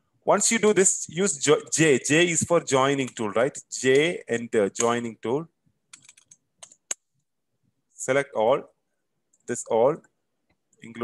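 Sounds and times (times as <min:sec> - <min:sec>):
computer keyboard clicks: 0:05.9 - 0:07.0.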